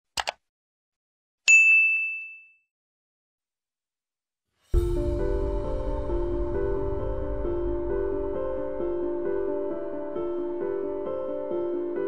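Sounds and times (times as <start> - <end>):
mouse clicks: 0.2 - 0.4
notification bell ding: 1.5 - 2.6.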